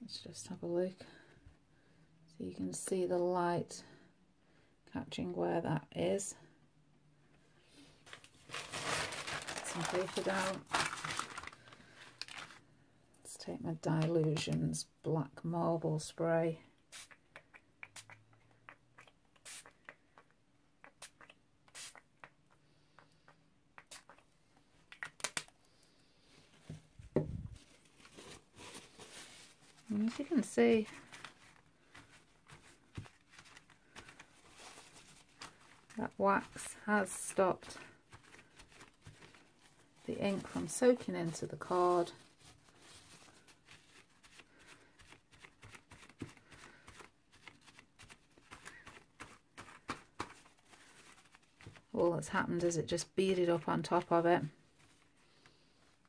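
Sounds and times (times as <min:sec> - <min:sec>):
paper towel rustling and crinkling: 0:08.0 - 0:12.6, 0:26.5 - 0:52.0, 0:53.5 - 0:56.0.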